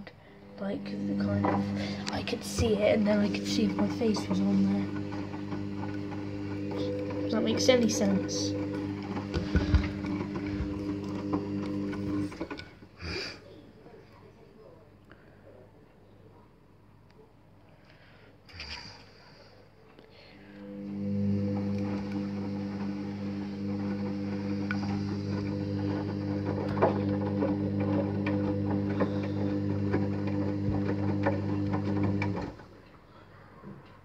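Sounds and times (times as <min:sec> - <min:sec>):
washing machine drum motor hum: 0:00.5 - 0:12.6, 0:20.7 - 0:32.8.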